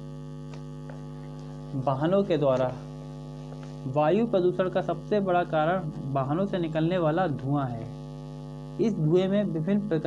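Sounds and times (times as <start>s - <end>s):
electrical mains hum: 0.0s - 10.0s
man's voice: 1.7s - 2.9s.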